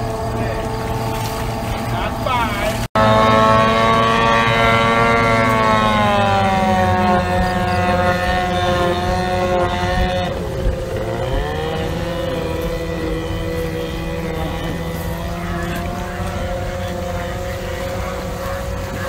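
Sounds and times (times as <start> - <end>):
racing outboard engine revving: 0.0 - 19.0.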